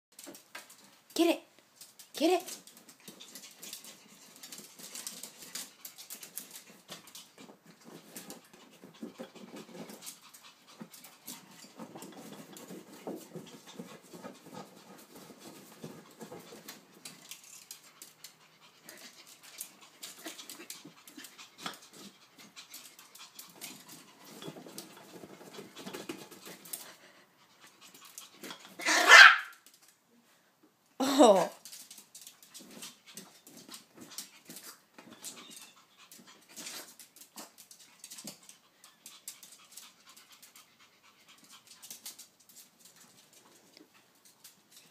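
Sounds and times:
paws clicking on tile floor: 0.1s - 30.0s, 31.5s - 44.9s
dog panting: 2.7s - 28.8s, 32.4s - 44.9s
dog barking: 28.8s - 29.5s.

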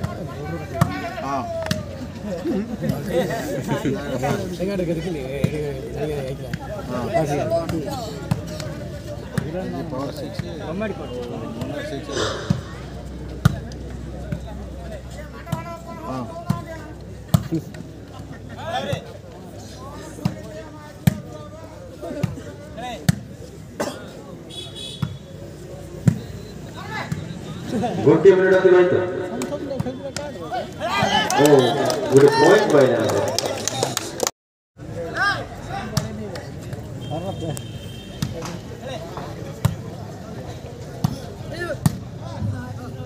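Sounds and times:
crowd chatter: 0.0s - 43.0s
background voices: 12.1s - 13.4s.

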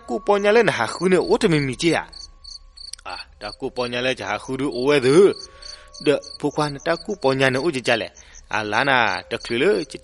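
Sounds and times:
narration voice: 0.0s - 2.1s, 3.0s - 10.0s
crickets chirping: 0.3s - 10.0s.

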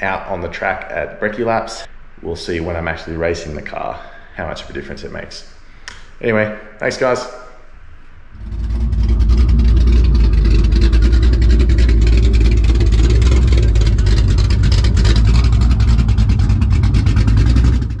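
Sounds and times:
engine running with deep note: 8.3s - 18.0s.

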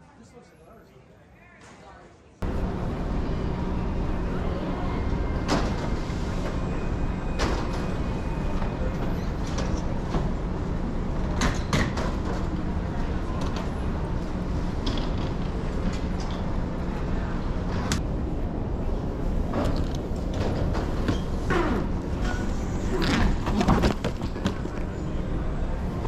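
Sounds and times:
baggage carousel rumble: 2.4s - 26.0s.

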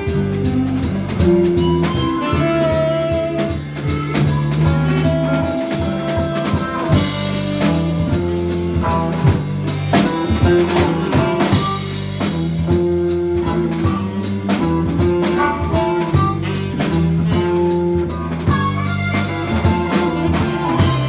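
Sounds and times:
drum kit hits: 0.0s - 21.0s
electric bass: 0.0s - 21.0s
harmonica melody: 0.0s - 21.0s
saxophone melody: 0.0s - 21.0s.

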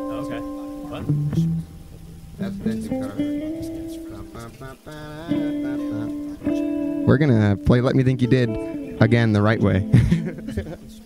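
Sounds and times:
guitar playing single notes: 0.0s - 11.0s.

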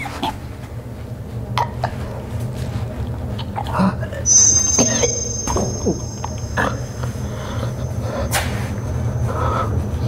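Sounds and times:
low rumbling drone: 4.3s - 8.3s.

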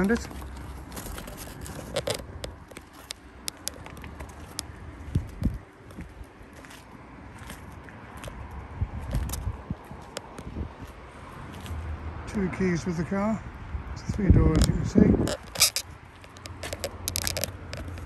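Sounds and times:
light clicks and scrapes: 0.0s - 6.0s, 14.5s - 18.0s
footsteps scuffing on tarmac: 0.0s - 11.9s.

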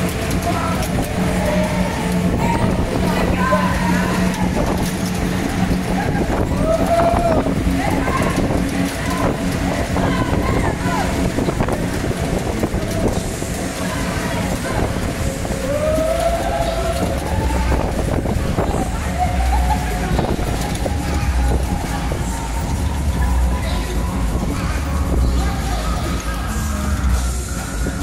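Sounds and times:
ride machinery humming: 0.0s - 28.0s
rush of swinging gondolas: 0.0s - 28.0s
voices of people: 0.0s - 28.0s.

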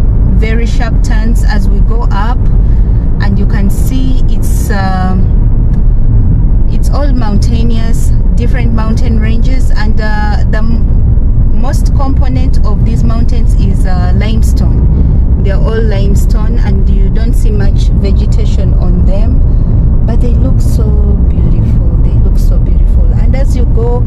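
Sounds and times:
car driving rumble from inside: 0.0s - 24.0s
person talking or singing: 20.1s - 24.0s.

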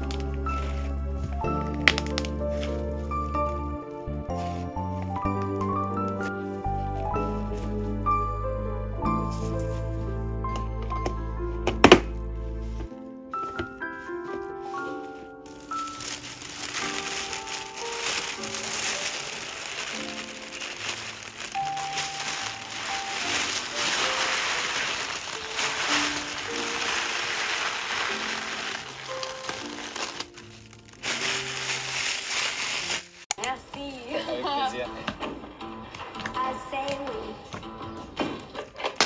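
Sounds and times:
plastic sheeting crinkling: 0.0s - 8.0s, 12.6s - 33.3s
slow background music: 0.0s - 39.0s.

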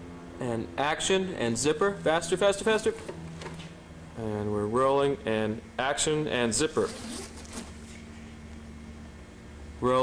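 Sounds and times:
low electrical hum: 0.0s - 10.0s
soft handling noise: 6.8s - 8.2s.

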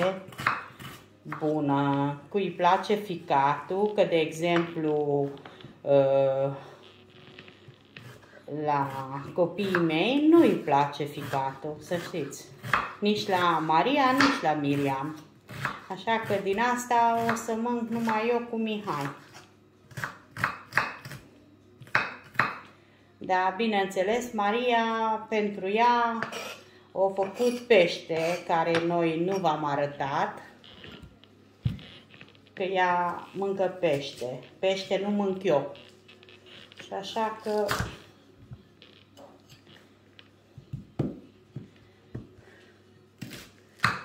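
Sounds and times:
knife chopping on wooden board: 0.0s - 1.5s, 11.2s - 14.8s, 15.5s - 16.5s, 43.2s - 44.0s
knife cutting onion on wooden board: 0.0s - 2.2s, 8.0s - 22.6s, 26.2s - 26.6s, 43.2s - 44.0s.

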